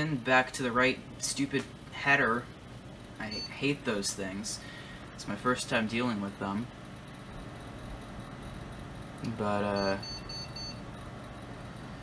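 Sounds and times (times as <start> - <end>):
faint steady hum: 0.0 - 12.0
computer speaker beeps: 3.2 - 3.7, 9.7 - 10.8.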